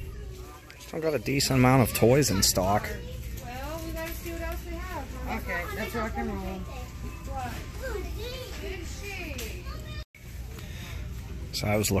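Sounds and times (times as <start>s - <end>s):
background voices in a store: 0.0s - 12.0s.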